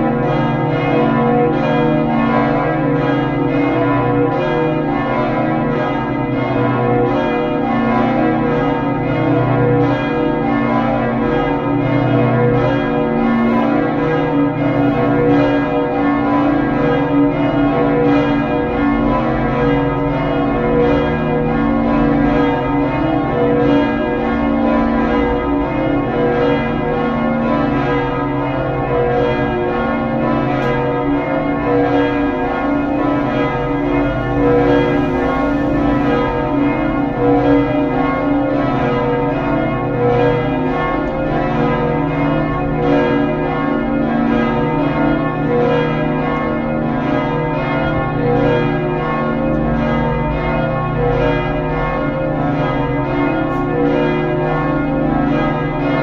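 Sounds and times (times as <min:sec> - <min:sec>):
church bells ringing: 0:00.0 - 0:56.0.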